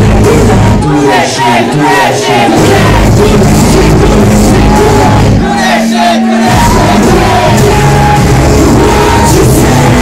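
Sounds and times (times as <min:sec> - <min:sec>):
loud hip-hop music: 0:00.0 - 0:10.0
crowd shouting along: 0:00.1 - 0:10.0.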